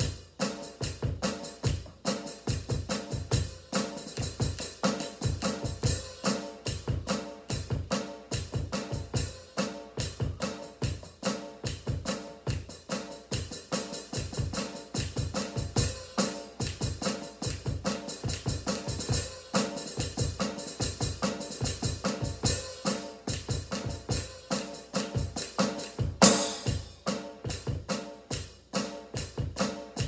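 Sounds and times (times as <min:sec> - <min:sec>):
electronic drum kit played with sticks: 0:00.0 - 0:30.0.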